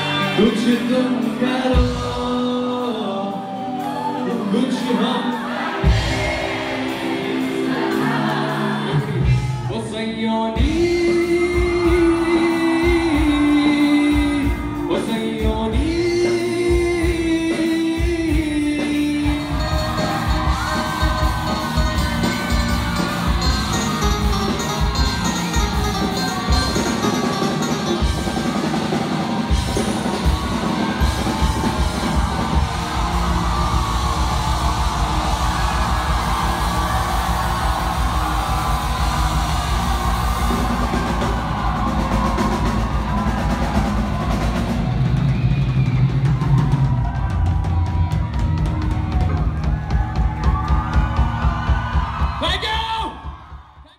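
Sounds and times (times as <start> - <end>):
person singing: 0.0 - 28.0
drum kit beat: 5.4 - 9.7, 10.6 - 53.8
steady bass: 10.6 - 52.4.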